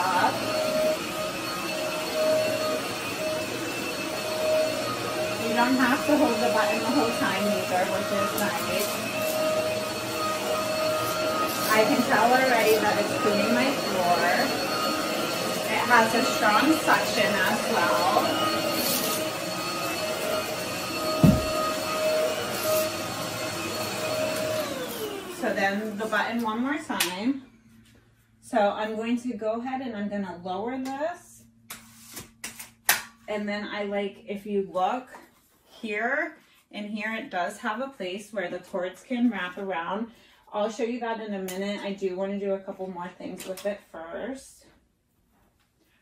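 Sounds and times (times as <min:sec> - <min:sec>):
vacuum cleaner on carpet: 0:00.0 - 0:27.1
low thump: 0:21.2 - 0:21.6.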